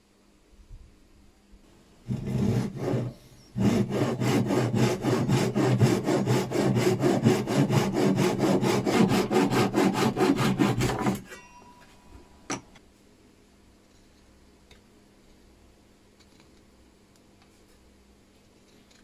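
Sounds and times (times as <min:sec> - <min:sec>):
hand saw cutting wood: 0:02.1 - 0:11.2.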